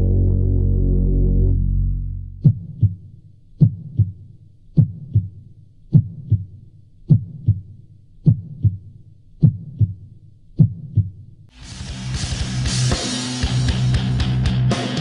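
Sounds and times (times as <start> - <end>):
heartbeat thumps: 2.3 - 10.0, 10.6 - 11.2.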